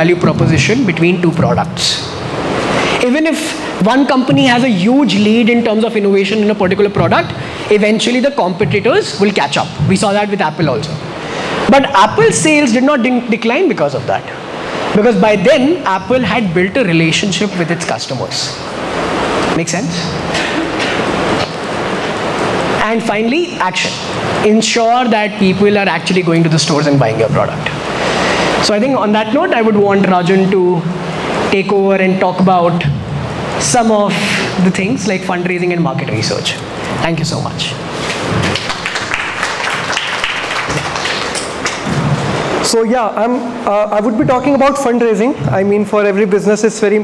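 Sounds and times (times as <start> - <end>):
loud rushing noise: 1.8 - 5.7, 18.5 - 23.2, 25.5 - 28.8, 36.7 - 45.6
microphone handling thumps: 4.3 - 5.4, 8.5 - 10.2, 41.6 - 42.6
audience applauding: 38.4 - 41.9.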